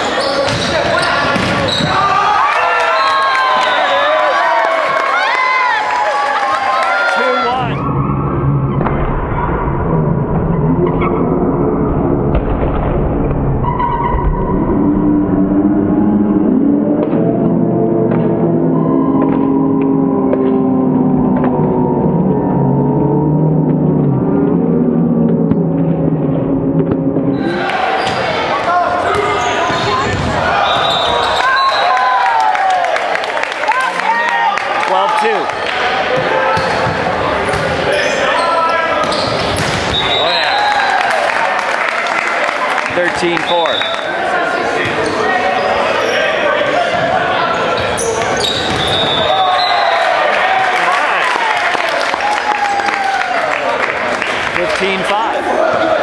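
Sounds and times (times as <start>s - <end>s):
sustained tones: 7.8s - 27.7s
players shouting: 27.3s - 56.0s
shoe squeaks: 47.8s - 49.2s.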